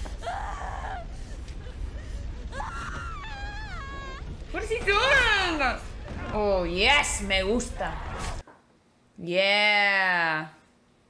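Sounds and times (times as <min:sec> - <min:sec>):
person wailing high-pitched: 0:02.5 - 0:04.4.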